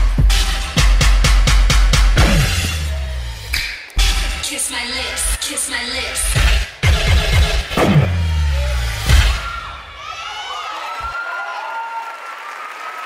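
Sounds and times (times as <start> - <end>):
hip-hop dance music: 0.0 - 10.0
audience cheering and shouting: 8.2 - 13.0.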